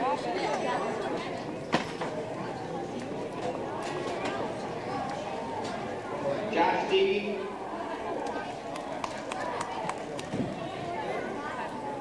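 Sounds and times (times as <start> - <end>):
murmured talk: 0.0 - 12.0.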